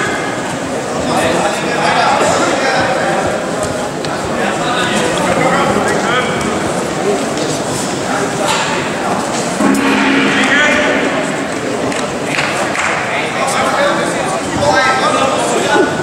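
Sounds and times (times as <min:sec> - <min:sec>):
crowd talking in echoing hall: 0:00.0 - 0:16.0.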